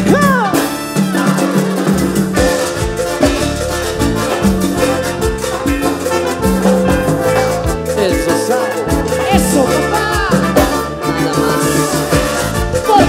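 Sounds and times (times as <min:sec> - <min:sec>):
keyboard: 0:00.0 - 0:13.0
steady drum beat: 0:00.0 - 0:13.0
trombones: 0:00.0 - 0:13.0.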